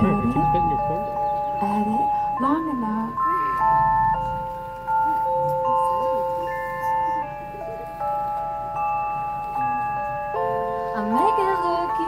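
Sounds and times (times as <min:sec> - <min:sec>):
keyboard playing sustained chords: 0:00.0 - 0:12.0.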